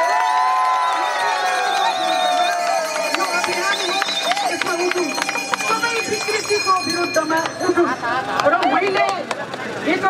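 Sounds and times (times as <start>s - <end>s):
outdoor crowd: 0.0s - 10.0s
woman speaking into a microphone: 4.6s - 7.9s.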